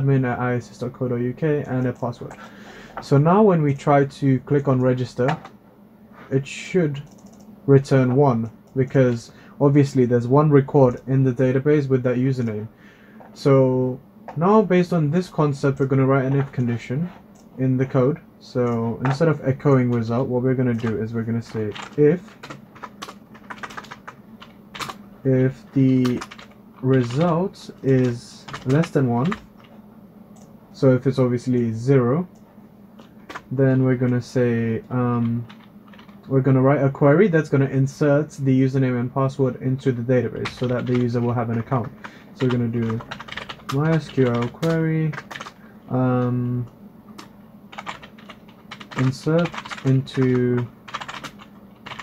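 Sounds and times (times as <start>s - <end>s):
typing on computer keyboard: 7.0s - 7.5s, 21.7s - 25.0s, 26.0s - 27.3s, 27.9s - 29.7s, 35.2s - 36.3s, 40.4s - 41.8s, 42.4s - 45.6s, 47.7s - 52.0s.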